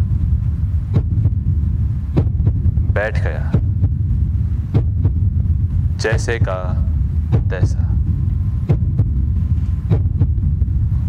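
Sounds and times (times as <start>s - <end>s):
low droning hum: 0.0s - 11.0s.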